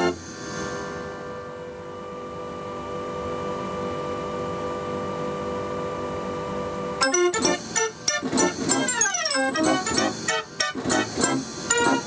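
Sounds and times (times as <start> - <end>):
street organ mechanical hum: 0.0 - 0.2, 1.1 - 12.0
street organ playing tune: 7.0 - 12.0.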